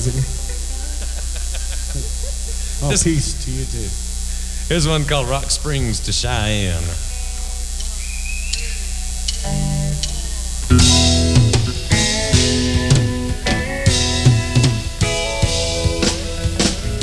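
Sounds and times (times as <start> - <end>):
electrical hum: 0.0 - 17.0
country band playing: 9.1 - 17.0.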